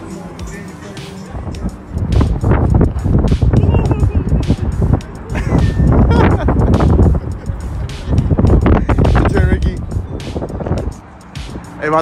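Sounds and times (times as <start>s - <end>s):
hip-hop beat with heavy bass: 0.0s - 12.0s
voice over beat: 3.3s - 5.0s.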